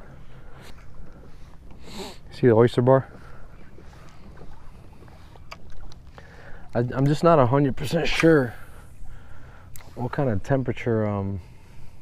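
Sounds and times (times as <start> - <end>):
low wind: 0.0 - 12.0
water noise: 0.0 - 12.0.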